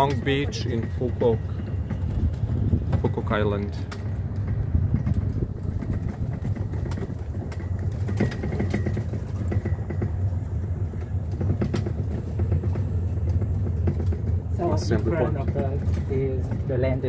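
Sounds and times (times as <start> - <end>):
small clicks and rattles: 0.0 - 16.8
golf cart rumbling on pavement: 0.0 - 17.0.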